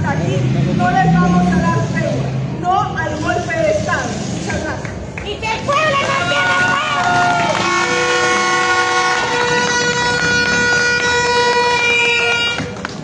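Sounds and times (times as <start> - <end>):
long buzzy horn blast: 7.5 - 12.8.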